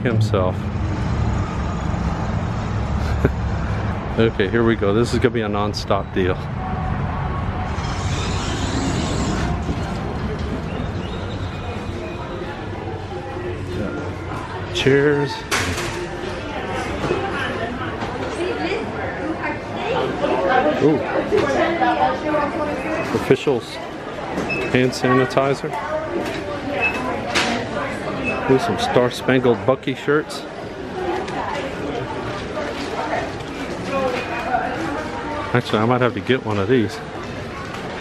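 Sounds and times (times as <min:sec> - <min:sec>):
low rumble of traffic: 0:00.0 - 0:16.9
chatter of voices: 0:00.0 - 0:38.0.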